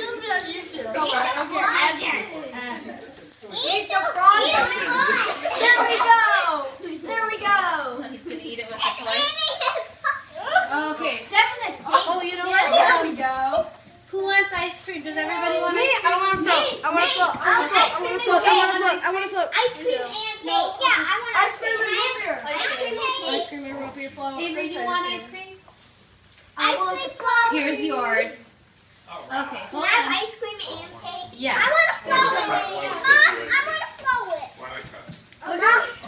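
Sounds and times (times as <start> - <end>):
children chattering: 0.0 - 25.6, 29.8 - 34.7.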